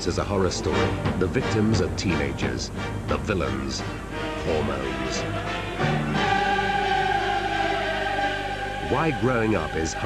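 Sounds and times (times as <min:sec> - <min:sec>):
choir holding sustained chord: 0:02.4 - 0:10.0.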